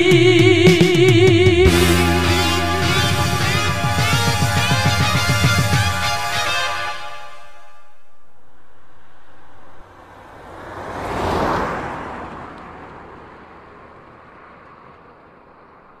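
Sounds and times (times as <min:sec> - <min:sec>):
vehicle passing: 0:08.5 - 0:16.0.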